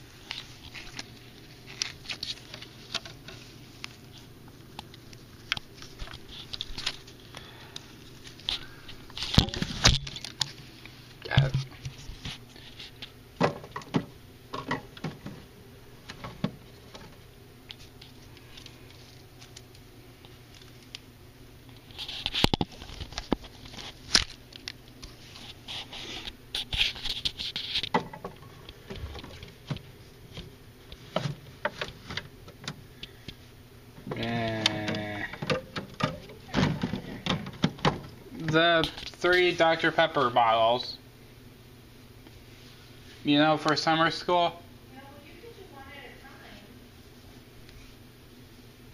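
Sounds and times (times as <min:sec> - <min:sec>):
low steady hum: 0:00.0 - 0:48.9.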